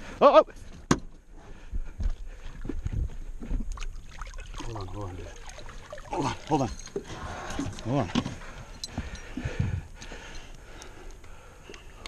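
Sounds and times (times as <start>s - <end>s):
water sloshing against metal hull: 2.6s - 10.4s.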